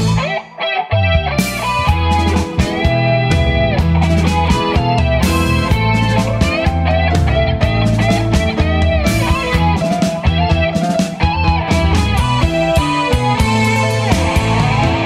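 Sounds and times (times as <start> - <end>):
bass: 0.0 - 15.0
drums: 0.0 - 15.0
electric guitar run: 0.0 - 15.0.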